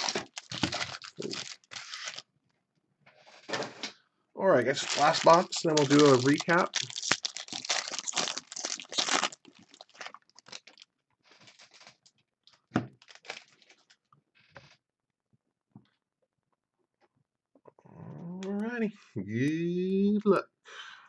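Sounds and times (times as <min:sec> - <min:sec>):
foil wrapper tearing and crinkling: 0:00.0 - 0:02.3, 0:04.7 - 0:14.0.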